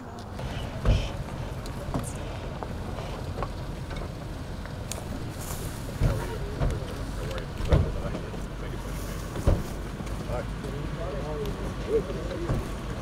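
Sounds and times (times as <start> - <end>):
faint voices: 0.0 - 3.4, 5.0 - 13.0
low outdoor rumble: 0.0 - 13.0.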